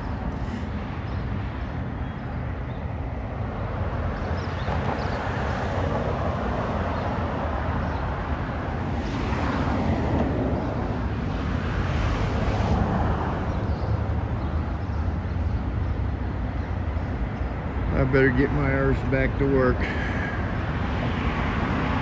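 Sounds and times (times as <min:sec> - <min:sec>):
cars passing: 0:00.0 - 0:22.0
road noise rumble: 0:00.0 - 0:22.0.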